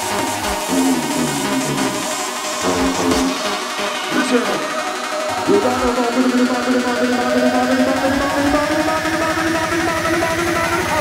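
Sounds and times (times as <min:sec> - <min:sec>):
fast drum beat: 0:00.0 - 0:11.0
hardcore dance music: 0:00.0 - 0:11.0
sliding synth lines: 0:00.0 - 0:11.0.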